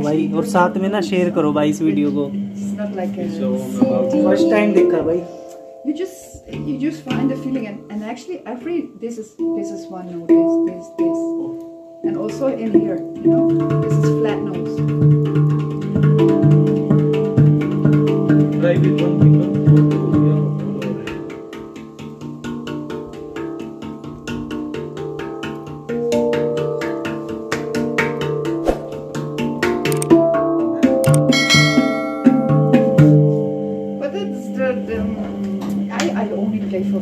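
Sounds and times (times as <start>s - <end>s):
handpan melody: 0.0s - 37.0s.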